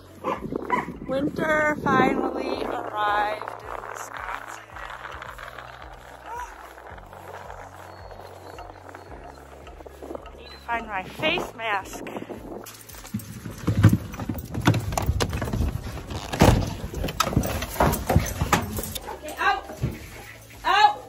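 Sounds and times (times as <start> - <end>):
background music: 0.0 - 21.0.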